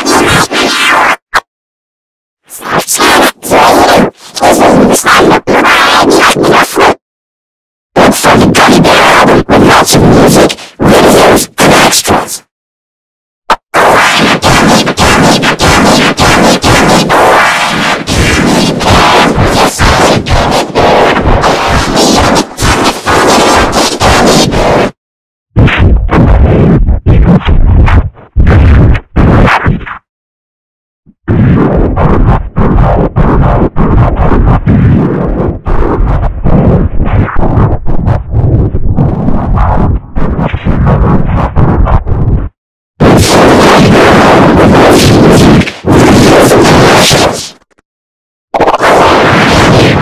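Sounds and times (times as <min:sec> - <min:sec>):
harsh distorted noise: 0:00.0 - 0:01.5, 0:02.5 - 0:07.0, 0:08.0 - 0:12.5, 0:13.5 - 0:25.0, 0:25.6 - 0:30.1, 0:31.1 - 0:47.7, 0:48.6 - 0:50.0.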